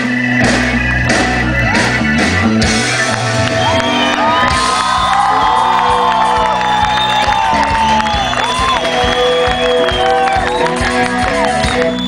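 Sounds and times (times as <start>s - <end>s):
live rock band playing: 0.0s - 12.0s
crowd cheering and whooping: 3.0s - 12.0s.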